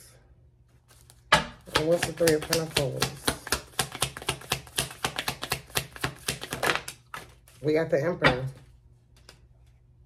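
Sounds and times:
cards being shuffled: 0.7s - 7.7s, 9.1s - 9.8s.

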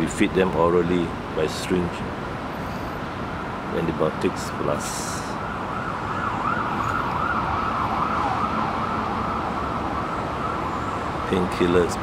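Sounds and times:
traffic noise: 0.0s - 12.0s
distant siren wailing: 4.6s - 12.0s.

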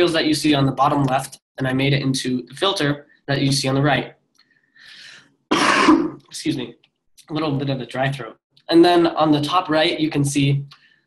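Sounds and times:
faint breath: 4.4s - 5.4s
man coughing: 5.5s - 6.3s.

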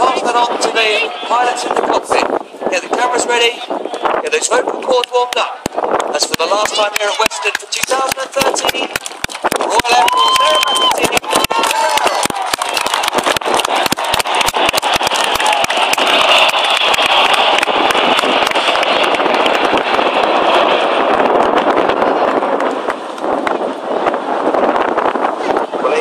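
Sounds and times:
jets passing overhead: 0.0s - 26.0s
wind buffeting microphone: 0.0s - 26.0s.

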